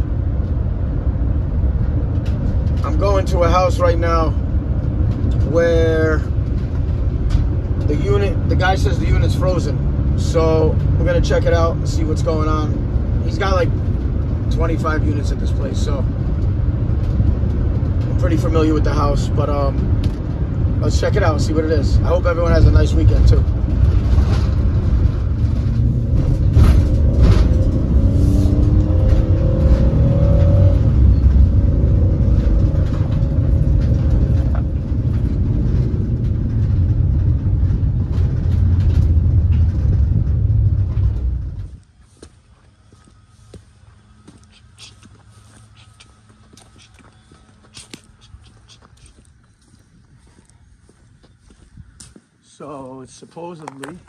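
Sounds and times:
road and engine rumble in car: 0.0 - 54.0.

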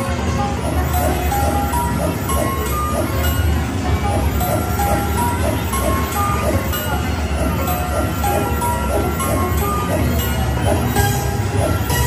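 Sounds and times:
casino crowd noise: 0.0 - 12.0
slot machine chiming music: 0.0 - 12.0.

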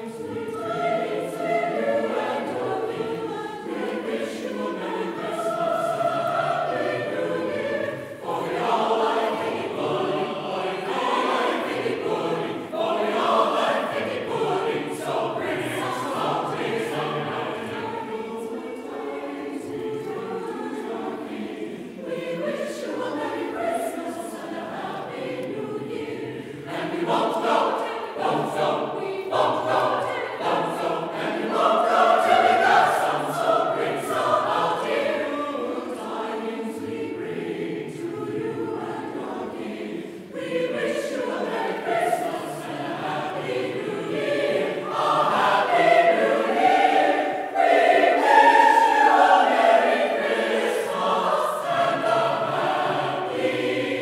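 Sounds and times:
choir singing: 0.0 - 54.0.

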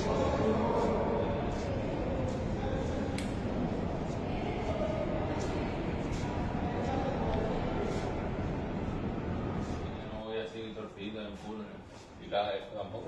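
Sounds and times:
muffled voices: 0.0 - 13.0
steady background noise: 0.0 - 13.0.

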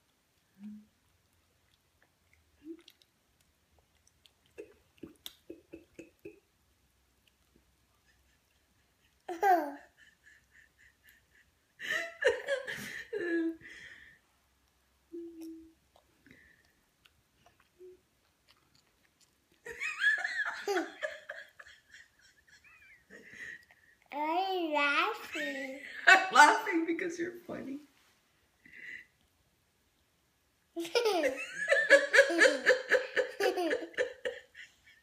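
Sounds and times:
young child laughing: 9.0 - 11.4, 30.8 - 34.7.

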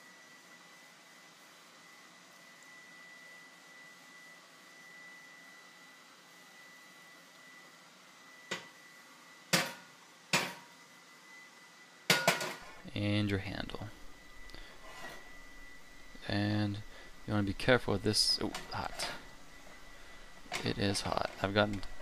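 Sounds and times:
thin steady high tone: 12.7 - 22.0.

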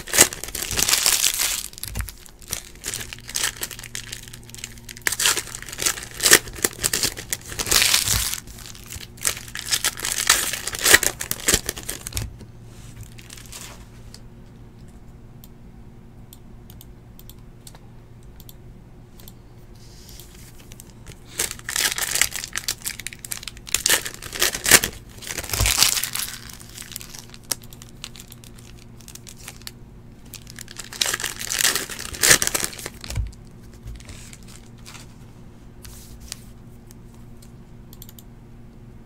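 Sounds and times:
card pack wrappers tearing and crinkling: 0.0 - 12.3, 13.0 - 13.8, 20.2 - 35.1.

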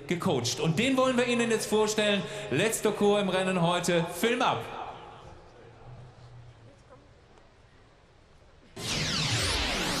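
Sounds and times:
loud sweeping whoosh: 8.8 - 10.0.

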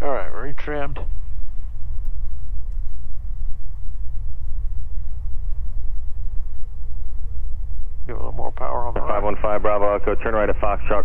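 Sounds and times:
aircraft engines droning: 0.0 - 11.0
faint steady hum: 0.0 - 11.0.

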